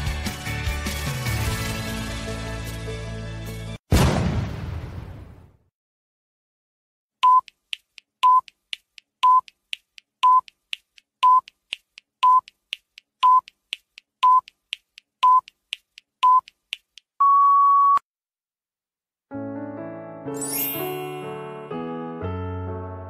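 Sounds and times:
short electronic beeps: 7.2s - 7.6s.

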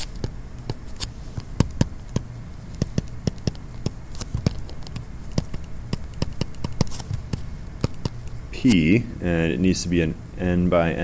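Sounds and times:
stylus tapping on tablet screen: 0.0s - 8.8s.

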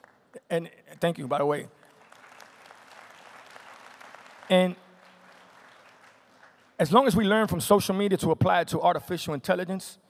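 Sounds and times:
faint audience applause: 1.8s - 7.1s.

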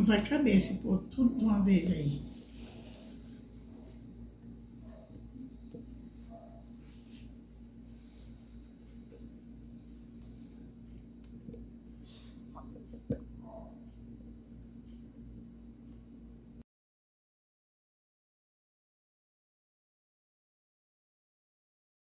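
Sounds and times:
low hum: 0.0s - 16.6s.

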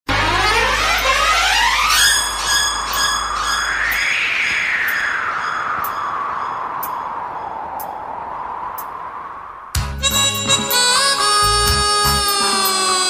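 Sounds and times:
high chiming tones pulsing: 0.1s - 8.5s
low hum: 0.1s - 9.8s
rising synthesizer sweep: 0.1s - 13.0s
synth glide climbing and falling: 0.1s - 13.0s.

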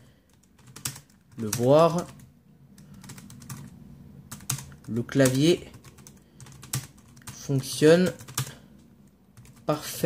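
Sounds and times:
faint low hum: 0.0s - 10.0s
keyboard typing clicks: 0.3s - 3.7s, 4.3s - 7.4s.

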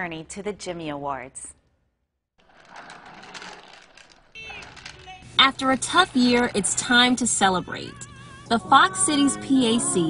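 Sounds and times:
rapid rattling noise: 2.4s - 7.5s.

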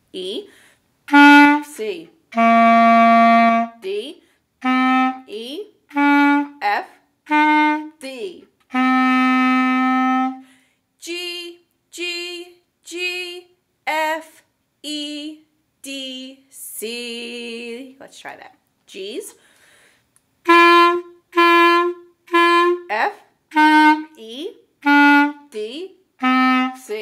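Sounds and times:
clarinet playing single notes: 1.1s - 3.8s, 4.6s - 6.7s, 7.3s - 8.0s, 8.6s - 10.4s, 20.4s - 24.2s, 24.8s - 27.0s.

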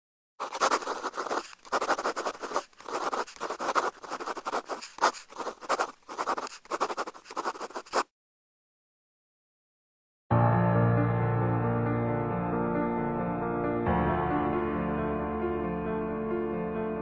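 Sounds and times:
pen scratching on paper: 0.4s - 8.1s.

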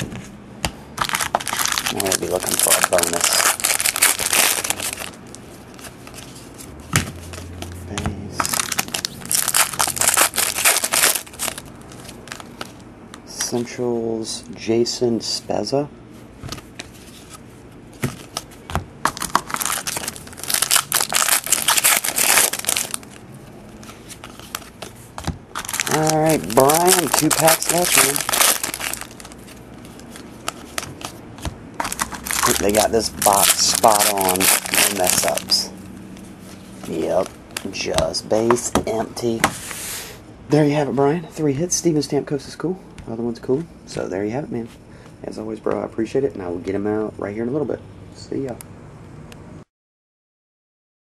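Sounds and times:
foil wrapper crinkling: 1.0s - 5.4s, 8.4s - 12.8s, 19.1s - 23.2s, 25.5s - 31.2s, 31.8s - 35.7s.

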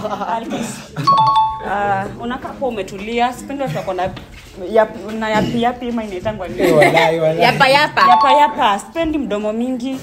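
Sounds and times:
two-note doorbell chime: 1.1s - 1.7s.

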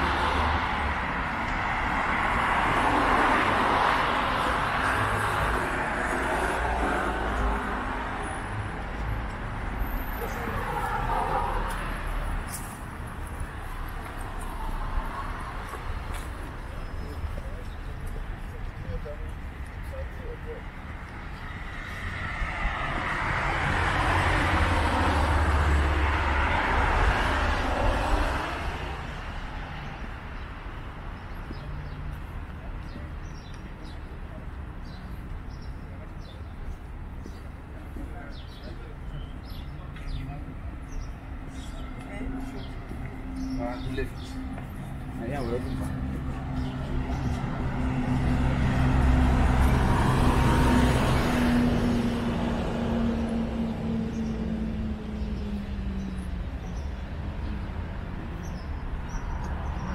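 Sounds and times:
road traffic: 0.0s - 59.9s.

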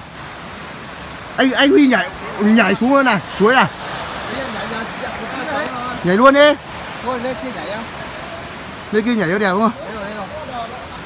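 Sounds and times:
stream rushing over stones: 0.0s - 11.0s
faint voices: 1.4s - 11.0s.

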